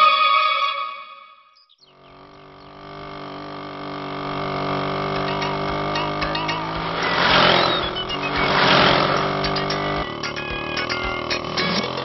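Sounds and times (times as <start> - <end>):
bird chirps: 1.5 - 2.8, 5.4 - 12.0
motorbike engine running: 1.8 - 12.0
rushing swells: 6.8 - 9.3.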